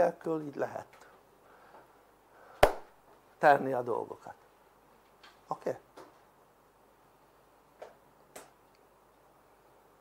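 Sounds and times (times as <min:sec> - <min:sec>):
sharp smack: 0:02.6 - 0:02.9.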